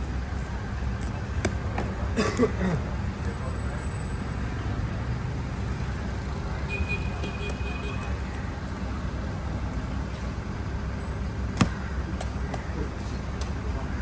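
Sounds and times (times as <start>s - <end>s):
road traffic rumble: 0.0s - 14.0s.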